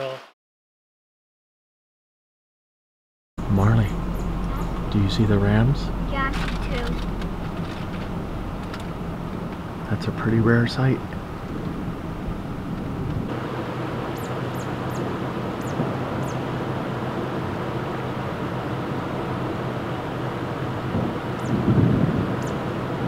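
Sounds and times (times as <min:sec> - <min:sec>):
wind: 0:03.4 - 0:23.0
wind gust: 0:11.0 - 0:23.0.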